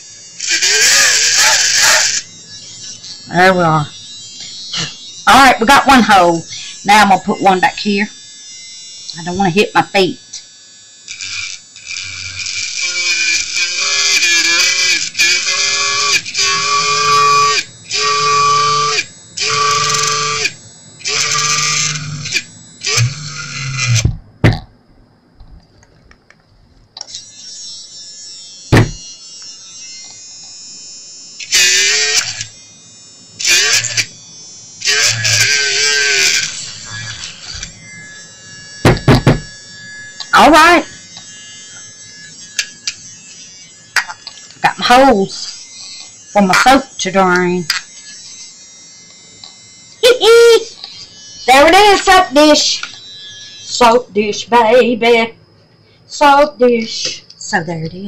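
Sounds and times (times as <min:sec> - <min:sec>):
electric drill whining: 0:00.0 - 0:24.6, 0:25.8 - 0:57.4.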